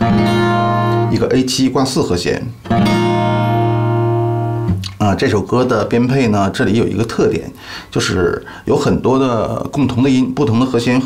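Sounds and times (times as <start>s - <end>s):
acoustic guitar chord ringing: 0.0s - 1.3s, 2.6s - 4.8s.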